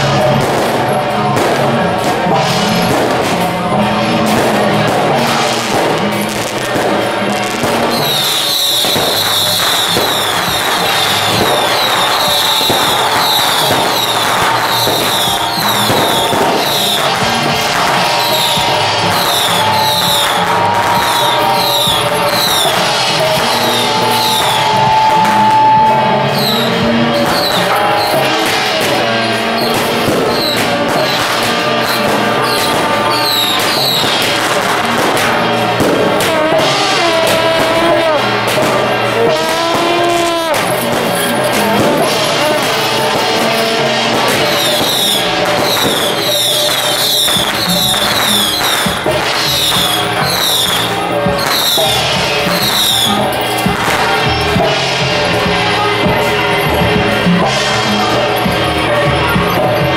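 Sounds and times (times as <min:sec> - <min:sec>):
firecrackers crackling: 0:00.0 - 0:59.9
music playing: 0:00.0 - 0:59.9.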